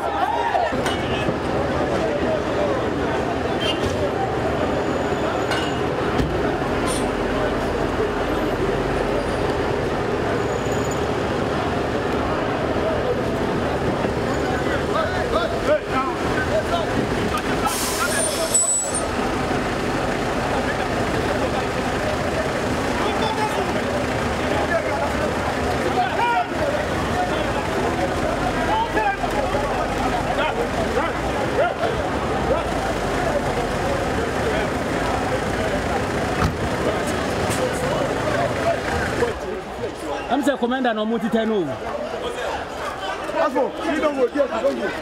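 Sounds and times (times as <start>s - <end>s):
vehicle engines running: 0.0s - 45.0s
voices talking: 0.0s - 45.0s
loud hiss: 17.6s - 18.6s.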